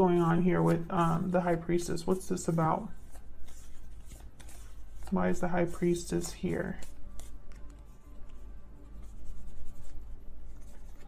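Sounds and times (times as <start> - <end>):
faint background music: 0.0 - 11.0
cards being shuffled: 2.4 - 8.4, 9.0 - 11.0.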